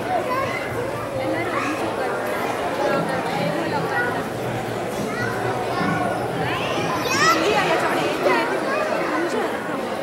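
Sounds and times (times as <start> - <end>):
chatter of many voices: 0.0 - 10.0
child's voice: 0.1 - 1.9, 5.0 - 7.6.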